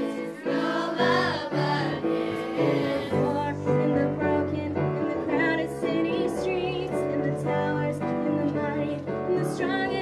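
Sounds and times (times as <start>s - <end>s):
girls singing together: 0.0s - 7.4s
instrumental accompaniment: 0.0s - 10.0s.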